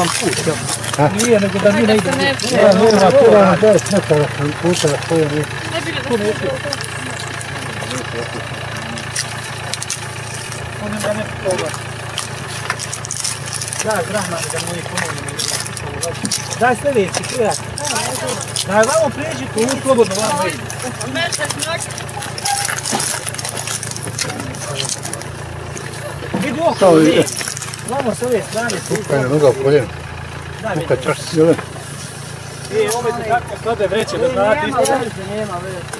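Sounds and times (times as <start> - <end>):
people talking: 0.0 - 10.2, 10.8 - 11.8, 13.6 - 31.7, 32.6 - 35.9
car engine idling: 0.0 - 35.9
steady low hum: 0.0 - 35.9.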